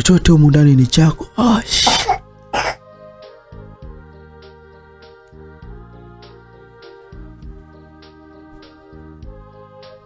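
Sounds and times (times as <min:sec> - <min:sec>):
quiet music of sustained chords: 0:00.0 - 0:10.0.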